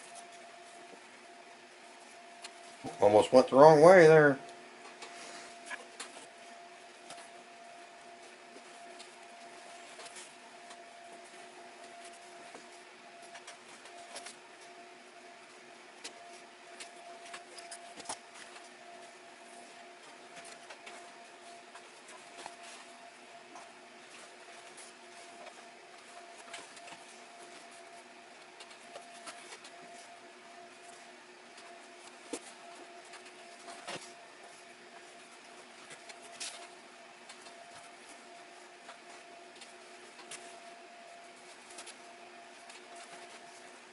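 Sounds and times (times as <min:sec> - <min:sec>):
faint steady hum: 0:00.0 - 0:43.9.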